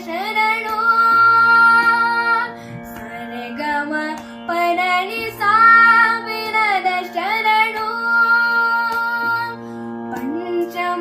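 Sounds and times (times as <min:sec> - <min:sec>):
boy singing: 0:00.0 - 0:09.6, 0:10.2 - 0:11.0
steady drone accompaniment: 0:00.0 - 0:11.0.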